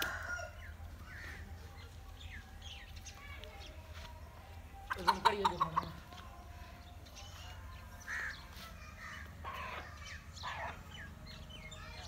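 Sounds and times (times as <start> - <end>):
birds chirping: 0.0 - 12.0
harsh bird calls: 4.9 - 12.0.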